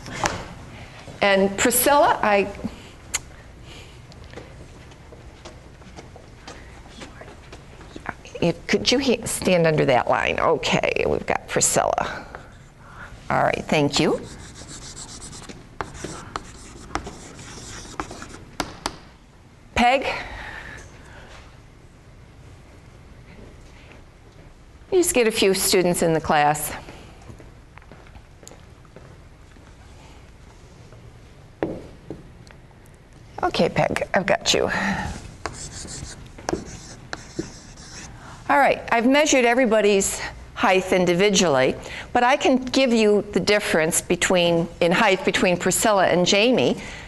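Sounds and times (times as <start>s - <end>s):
chalk scratching on chalkboard: 14.1s - 18.5s, 35.4s - 38.2s
chalk tapping on board: 14.2s - 19.0s, 35.4s - 38.1s.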